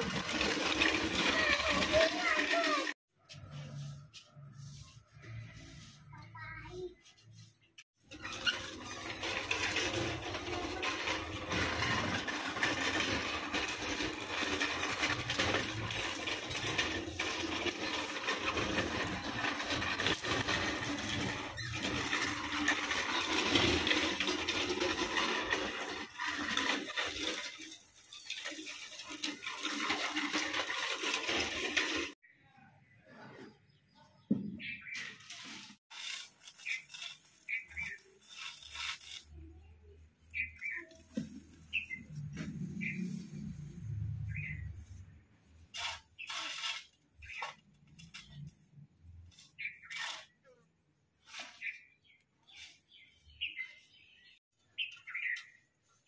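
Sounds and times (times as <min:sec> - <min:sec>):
broom sweeping concrete floor: 0:00.0 - 0:32.2, 0:34.6 - 0:56.0
scattered scrapes and knocks: 0:00.0 - 0:32.2, 0:34.2 - 0:50.5, 0:51.2 - 0:56.0.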